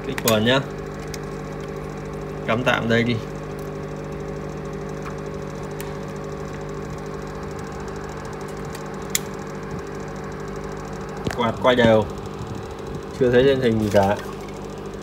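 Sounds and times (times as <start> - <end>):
electrical hum of fans: 0.0 - 15.0
sharp click: 8.5 - 9.4.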